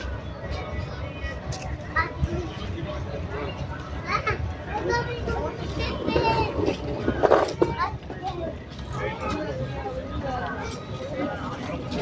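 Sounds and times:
people talking and calling: 0:00.0 - 0:12.0
children's voices: 0:01.2 - 0:12.0.

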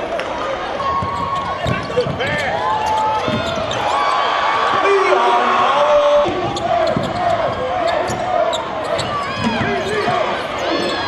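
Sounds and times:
sneakers squeaking on hardwood: 0:00.8 - 0:04.8, 0:06.2 - 0:11.0
basketball bouncing on floor: 0:00.9 - 0:03.8, 0:06.2 - 0:10.2.

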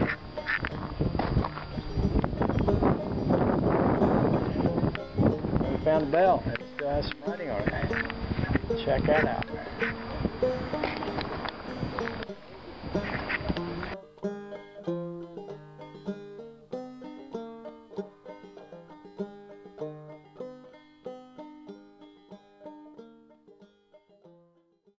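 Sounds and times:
rushing noise: 0:00.0 - 0:14.0
banjo plucking: 0:00.0 - 0:24.9.

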